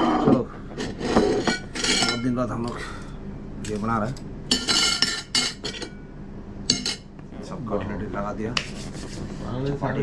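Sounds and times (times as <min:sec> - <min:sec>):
tableware clinking and rattling: 0:00.0 - 0:02.3, 0:04.5 - 0:06.0, 0:06.7 - 0:07.1.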